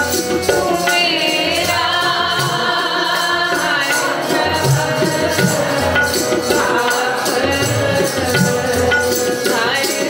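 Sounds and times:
harmonium: 0:00.0 - 0:10.0
tabla strikes: 0:00.0 - 0:10.0
voices singing a hymn together: 0:00.4 - 0:10.0.

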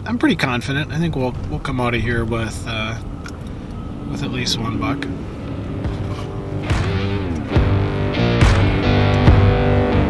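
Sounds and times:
road rumble inside vehicle: 0:00.0 - 0:10.0
background music with guitar: 0:05.0 - 0:10.0.

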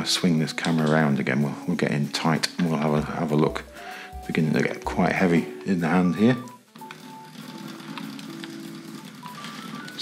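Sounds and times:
soft background music: 0:00.0 - 0:10.0
model train running on track: 0:07.0 - 0:10.0.

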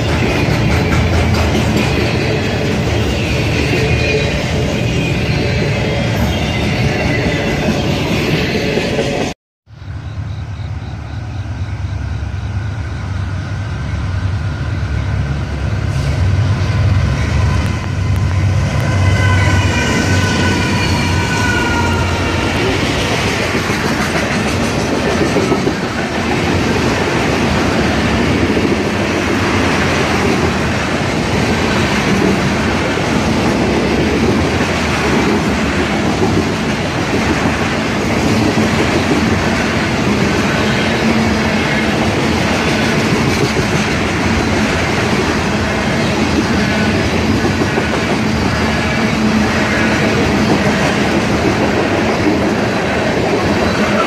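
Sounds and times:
steel wheels clattering on rails: 0:00.0 - 0:04.0
freight train rolling past: 0:00.0 - 0:54.0.

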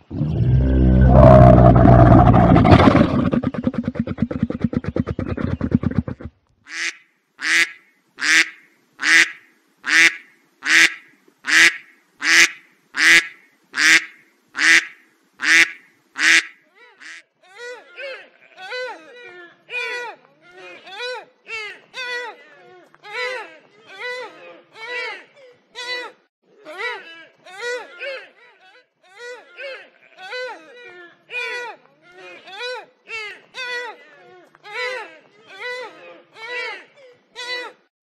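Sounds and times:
camel calling: 0:00.0 - 0:06.3
faint pitch-bending calls: 0:00.0 - 0:06.3
duck quacking: 0:04.5 - 0:17.2.

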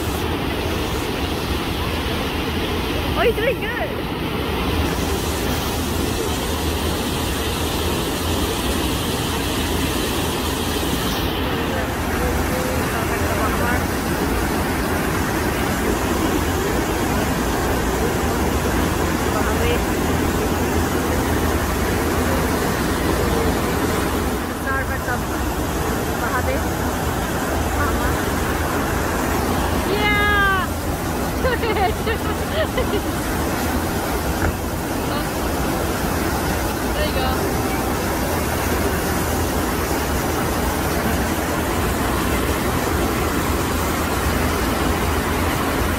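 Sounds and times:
water rushing: 0:00.0 - 0:45.9
faint voices: 0:11.2 - 0:43.4.

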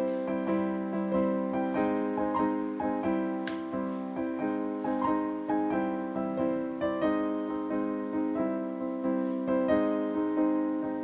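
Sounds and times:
gentle piano music: 0:00.0 - 0:11.0.

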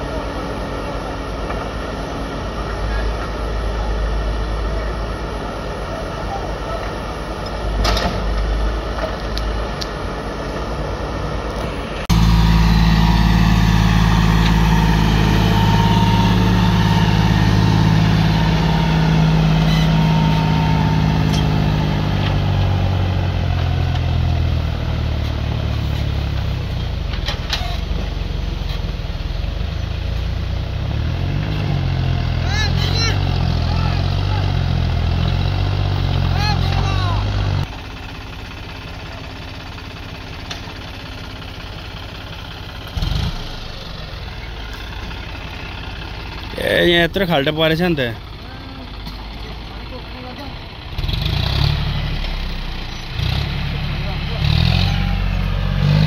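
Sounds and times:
tractor diesel engine under load: 0:00.0 - 0:56.0.

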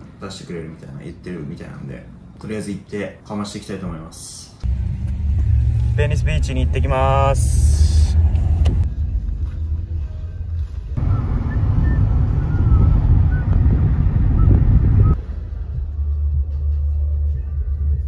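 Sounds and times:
car cabin road and engine rumble: 0:04.6 - 0:18.0.

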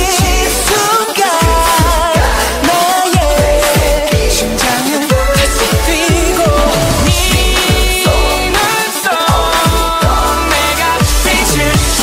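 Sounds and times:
deep electronic kick drums: 0:00.0 - 0:00.8, 0:01.4 - 0:08.6, 0:09.3 - 0:12.0
person singing wavering melody: 0:00.0 - 0:12.0.

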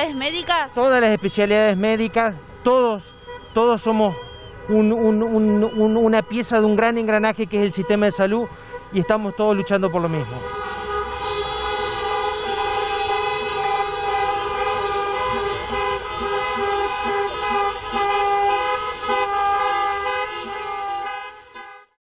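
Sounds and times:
car horns honking: 0:00.0 - 0:22.0
engine and traffic noise: 0:00.0 - 0:22.0.

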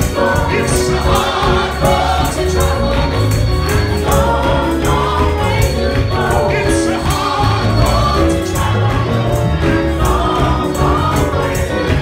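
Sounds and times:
bass: 0:00.0 - 0:12.0
gospel choir singing: 0:00.0 - 0:12.0
keyboard: 0:00.0 - 0:12.0
percussion strikes: 0:00.0 - 0:12.0.

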